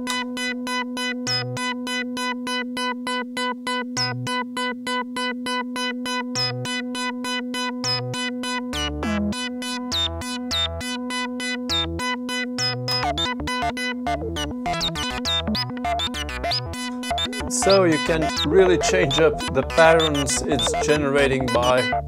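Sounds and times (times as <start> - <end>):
low bass notes: 12.9 - 22.0
short pitched synthesizer notes: 14.7 - 22.0.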